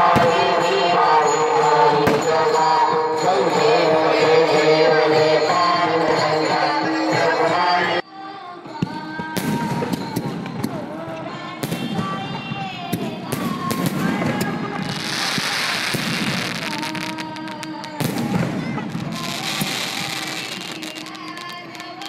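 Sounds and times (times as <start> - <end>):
fireworks bangs: 0.0 - 3.2, 8.8 - 22.0
fireworks crackling: 9.3 - 22.0.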